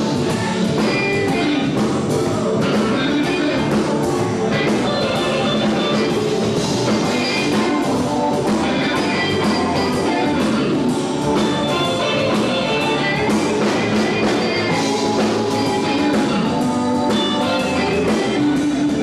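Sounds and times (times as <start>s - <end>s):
live blues band playing: 0.0s - 19.0s.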